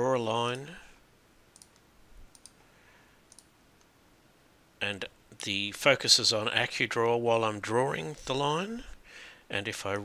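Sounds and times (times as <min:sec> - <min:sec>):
faint computer mouse clicks: 0:01.5 - 0:02.6, 0:03.3 - 0:03.9.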